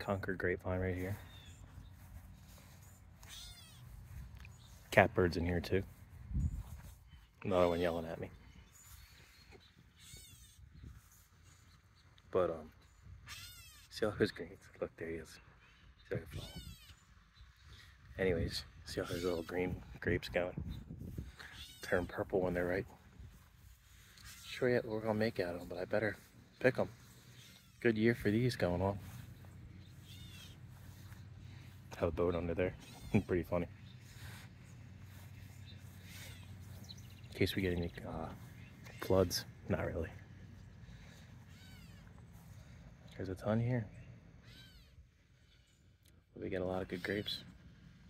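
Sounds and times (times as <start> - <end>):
catbird wavering call: 2.9 - 4.1, 13.2 - 13.9, 29.8 - 31.6, 41.0 - 42.2, 44.4 - 45.8
bird mewing call: 29.1 - 31.9, 32.8 - 37.3, 40.6 - 42.4.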